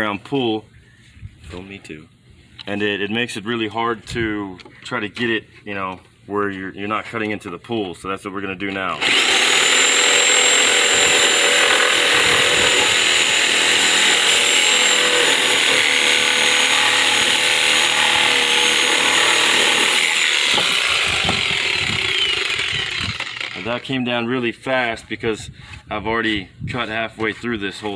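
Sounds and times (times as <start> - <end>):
reciprocating saw cutting wood: 9.0 - 23.8.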